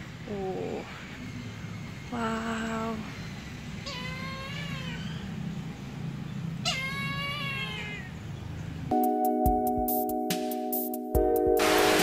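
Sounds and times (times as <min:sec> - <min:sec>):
bird meow-like calls: 0:02.0 - 0:05.5, 0:06.6 - 0:08.4.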